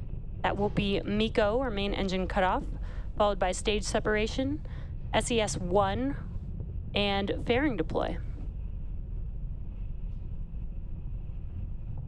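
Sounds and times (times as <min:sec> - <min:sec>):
rocket engines rumbling: 0:00.4 - 0:06.4, 0:07.0 - 0:08.4.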